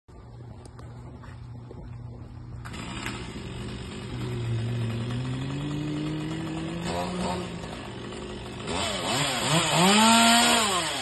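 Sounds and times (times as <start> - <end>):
engine running with rising pitch: 1.0 - 11.0.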